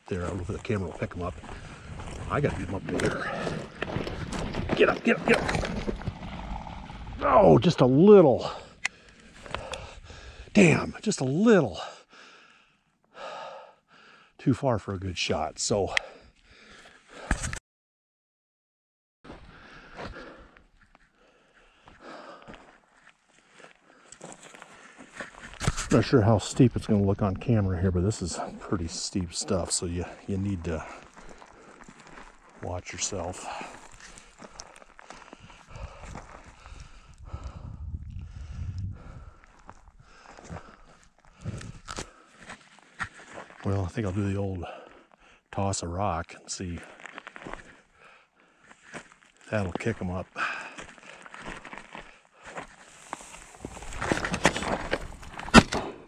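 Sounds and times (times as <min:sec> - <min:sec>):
boots crunching on gravel: 0:00.2 - 0:06.7, 0:29.6 - 0:36.7, 0:46.8 - 0:47.8, 0:48.8 - 0:55.6
man breathing out heavily: 0:08.4 - 0:10.6, 0:11.8 - 0:14.4, 0:19.4 - 0:20.6, 0:21.2 - 0:22.7, 0:33.4 - 0:42.4.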